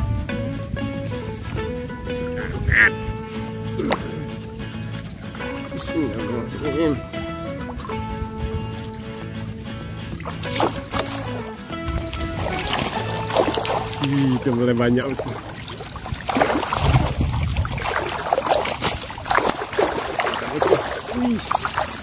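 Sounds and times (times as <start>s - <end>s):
background music: 0.0s - 16.7s
water splashing and sloshing: 0.0s - 22.0s
fish thrashing: 0.7s - 22.0s.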